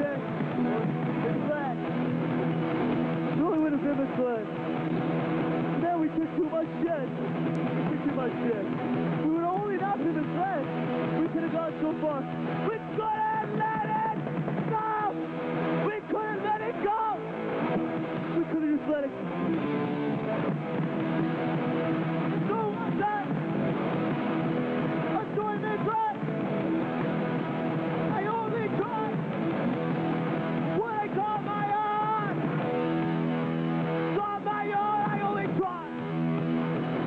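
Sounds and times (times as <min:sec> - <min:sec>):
punk band playing: 0:00.0 - 0:37.0.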